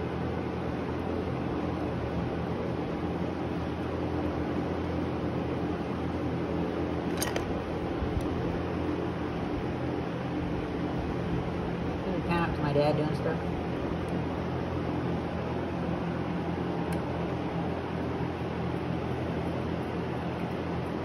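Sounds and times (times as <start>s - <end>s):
fan humming: 0.0s - 21.0s.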